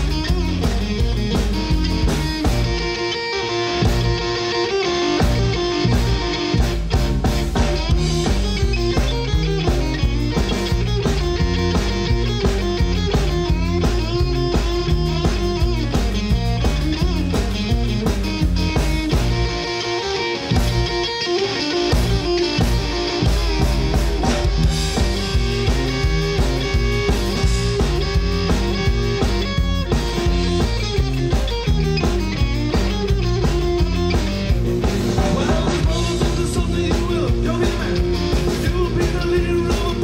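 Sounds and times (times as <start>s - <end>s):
bass guitar: 0.0s - 40.0s
drum kit: 0.0s - 40.0s
electric guitars: 0.0s - 40.0s.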